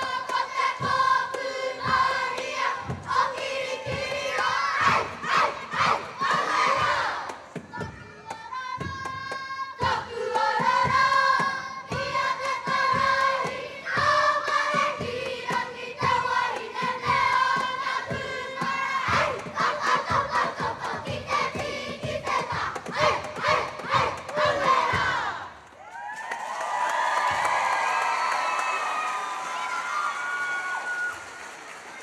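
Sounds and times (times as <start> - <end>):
children shouting chant in unison: 0.0 - 25.5
sharp beats: 0.0 - 25.5
audience cheering and whooping: 25.8 - 31.6.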